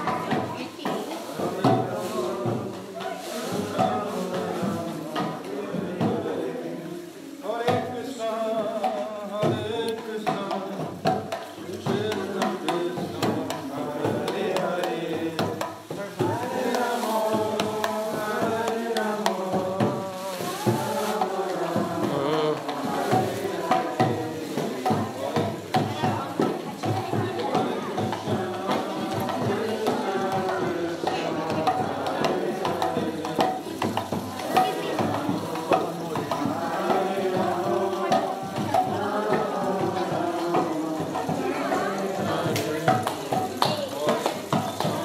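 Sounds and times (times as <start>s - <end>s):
drum and hand percussion: 0.0s - 45.0s
group chanting: 0.0s - 45.0s.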